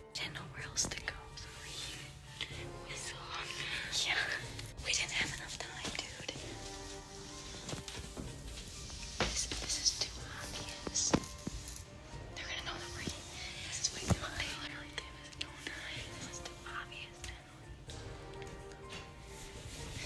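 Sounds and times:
soft background music: 0:00.0 - 0:20.0
hushed whispering voices: 0:12.4 - 0:17.6.

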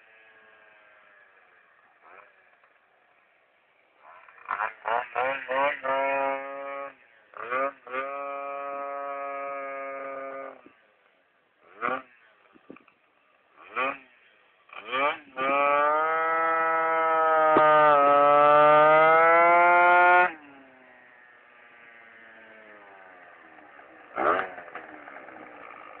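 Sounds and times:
scooter engine revving: 0:00.0 - 0:03.0, 0:04.0 - 0:10.8, 0:11.6 - 0:12.9, 0:13.5 - 0:26.0.

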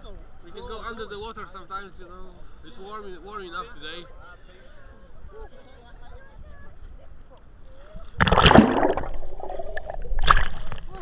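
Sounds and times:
water splashing: 0:08.1 - 0:11.0.

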